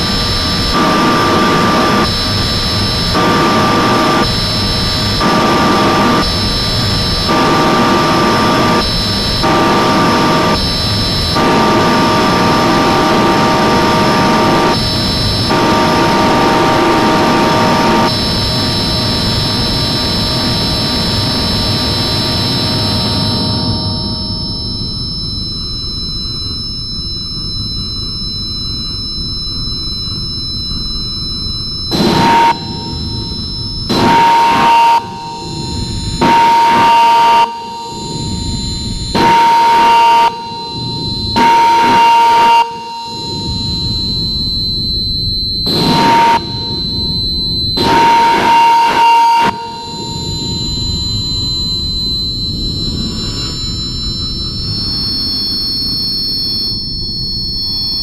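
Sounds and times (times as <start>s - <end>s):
harsh noise blasts: 0.0s - 24.8s, 31.6s - 55.4s
thin high whining tones: 24.7s - 58.0s.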